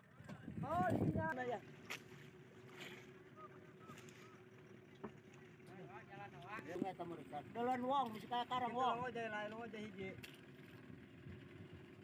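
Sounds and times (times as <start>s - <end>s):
outboard motor humming: 0.0s - 12.0s
distant calls: 1.6s - 5.7s.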